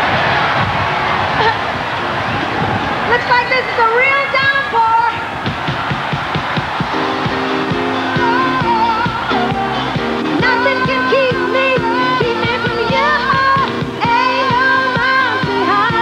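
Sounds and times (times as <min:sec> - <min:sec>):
huge crowd noise: 0:00.0 - 0:16.0
held keyboard chords: 0:05.5 - 0:16.0
woman singing: 0:07.9 - 0:16.0.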